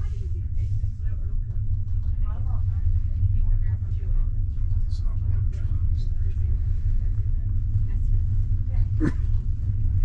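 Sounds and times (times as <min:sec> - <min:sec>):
faint voices: 0:00.0 - 0:10.0
train carriage interior rumble: 0:00.0 - 0:10.0.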